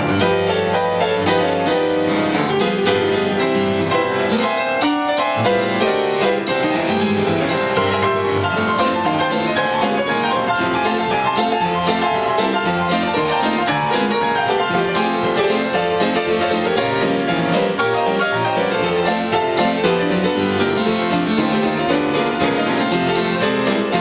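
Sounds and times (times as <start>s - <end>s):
ragtime blues piano duet: 0.0s - 24.0s.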